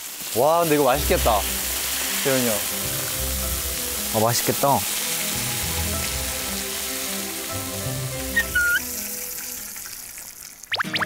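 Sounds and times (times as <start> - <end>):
meat sizzling in a pan: 0.0 - 10.8
background music: 0.3 - 11.0.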